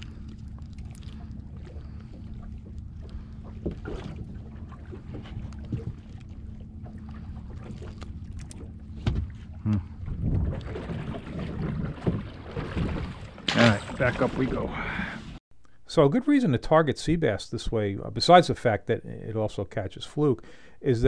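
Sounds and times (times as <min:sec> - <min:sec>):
clicks and rustles of handling fish: 0:00.0 - 0:04.2, 0:04.8 - 0:06.4, 0:07.5 - 0:09.5
low hum: 0:00.0 - 0:21.0
wind noise: 0:10.0 - 0:13.2.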